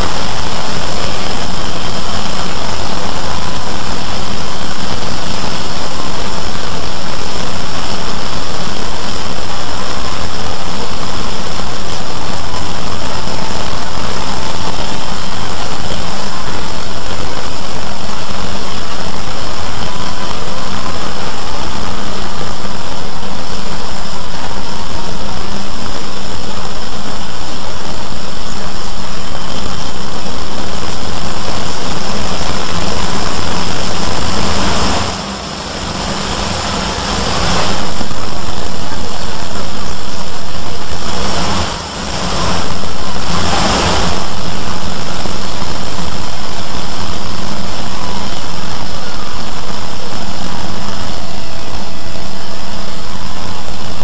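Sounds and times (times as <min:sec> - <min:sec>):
dense wall of overlapping soundtracks: 0:00.0 - 0:54.0.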